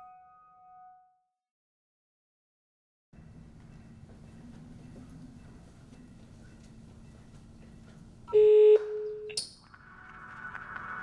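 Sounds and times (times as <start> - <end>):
music: 3.2 - 8.3, 9.6 - 11.0.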